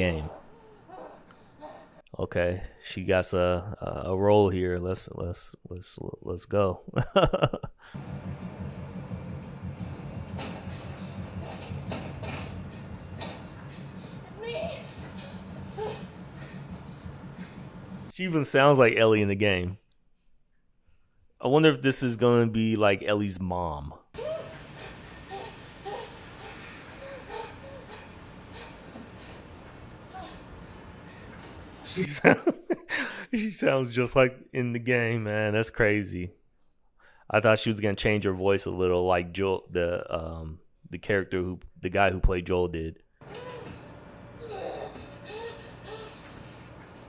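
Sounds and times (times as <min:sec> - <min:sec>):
woman moaning in pain: 0:14.2 - 0:16.3, 0:24.2 - 0:28.7
distant human screams: 0:24.2 - 0:24.8.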